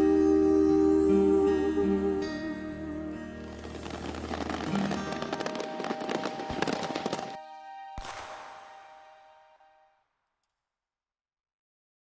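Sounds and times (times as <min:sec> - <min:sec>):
soft background music: 0:00.0 - 0:10.0
fireworks crackling: 0:03.3 - 0:09.4.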